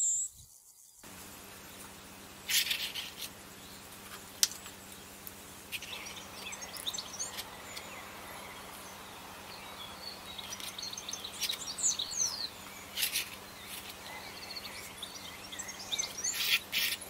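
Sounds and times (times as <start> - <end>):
small birds chirping: 0.0 - 17.0
paintbrush scraping canvas: 12.9 - 14.1.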